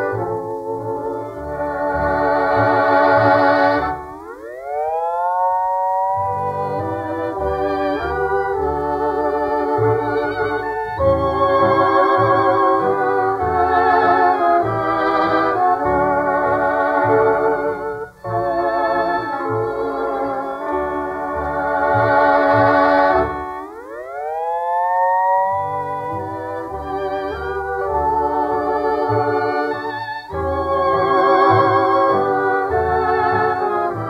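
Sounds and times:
steady bass notes: 0.0s - 24.5s, 25.5s - 34.0s
hawaiian-style dance orchestra: 0.0s - 34.0s
vibrato melody line: 0.0s - 34.0s.

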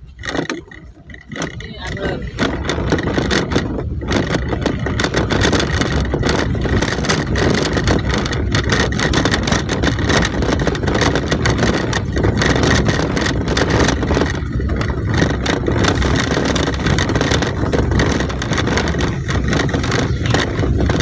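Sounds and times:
car engine and tyre noise: 0.0s - 21.0s
car interior knocks and rattles: 0.0s - 21.0s.

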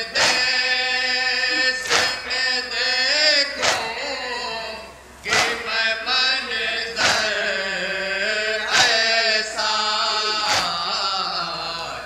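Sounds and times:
men chanting in unison: 0.0s - 12.0s.

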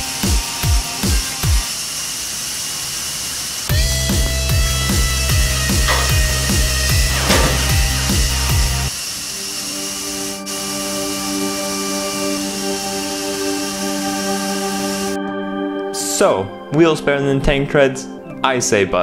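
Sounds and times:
steady hiss: 1.4s - 3.7s, 7.1s - 15.2s
held synth chords: 3.7s - 16.8s.

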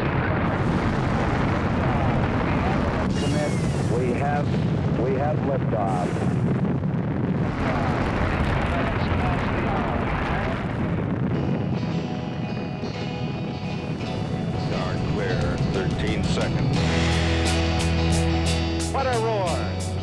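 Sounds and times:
rocket roaring at liftoff: 0.0s - 12.4s
music with heavy bass beat: 15.3s - 20.0s.

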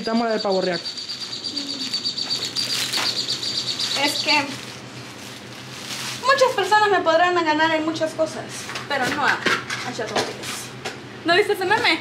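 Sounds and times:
high-pitched chirping: 0.0s - 4.8s
plastic bag rustling: 1.8s - 7.2s.

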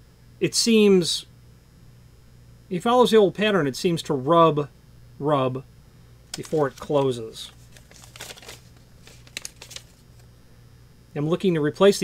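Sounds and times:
paper crinkling and rustling: 6.3s - 10.3s.

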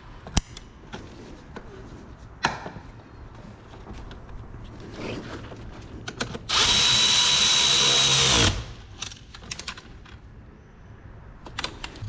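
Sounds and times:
electric ratchet whining: 6.5s - 8.8s.

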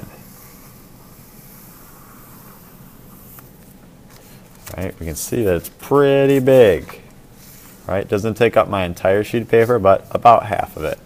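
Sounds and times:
pencil scratching on paper: 0.0s - 3.4s
low background hiss: 0.0s - 11.0s.

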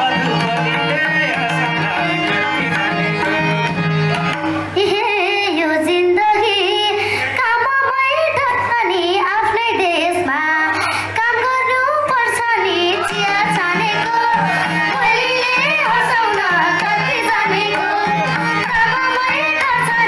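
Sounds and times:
instrumental accompaniment: 0.0s - 7.4s, 11.0s - 20.0s
girl singing into microphone: 4.8s - 20.0s.

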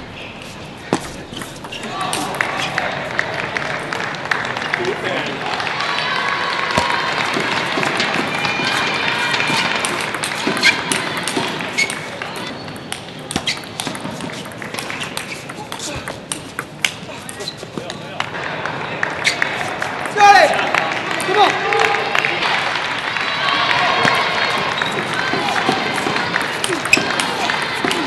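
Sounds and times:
hum of voices: 0.0s - 28.0s
table tennis ball tapping: 12.8s - 17.0s.

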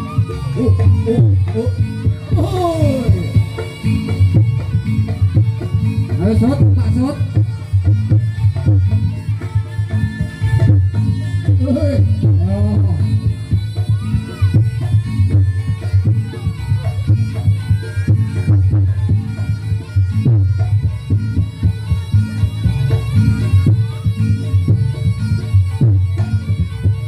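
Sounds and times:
drums steady rhythm: 0.0s - 27.0s
reedy wind instrument: 0.0s - 27.0s.

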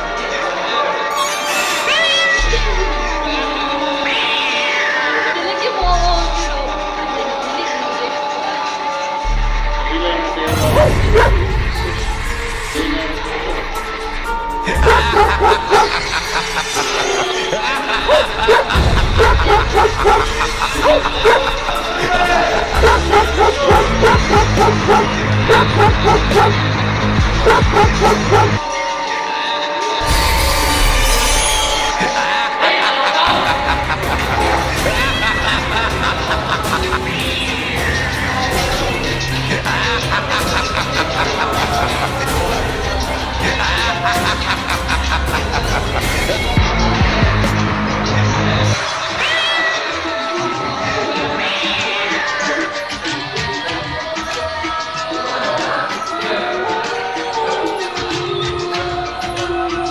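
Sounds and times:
background music: 0.0s - 59.9s
dog barking rapidly: 14.8s - 16.0s, 18.1s - 21.5s, 22.8s - 26.6s, 27.4s - 28.6s.

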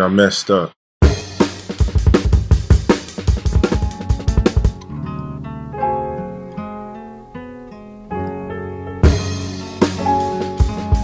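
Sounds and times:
fast kick and snare hits: 1.0s - 4.8s
plucked guitar-like notes: 3.3s - 11.0s.

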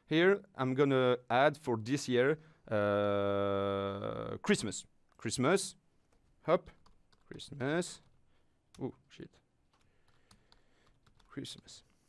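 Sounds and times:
faint keyboard typing: 6.0s - 9.0s, 9.6s - 12.0s.

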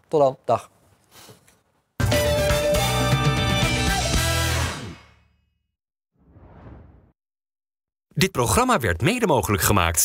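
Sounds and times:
whoosh sound effect: 6.2s - 7.1s.

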